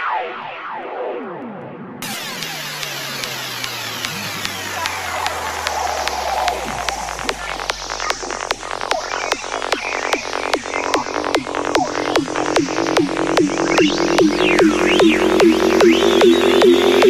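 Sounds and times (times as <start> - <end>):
synthesizer sweeping down: 0.0 - 17.0
falling bass tone: 1.7 - 17.0
ticking percussion: 2.0 - 17.0.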